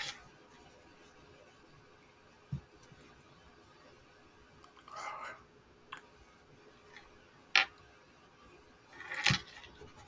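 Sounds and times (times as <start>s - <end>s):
breathy whisper: 4.8s - 5.5s.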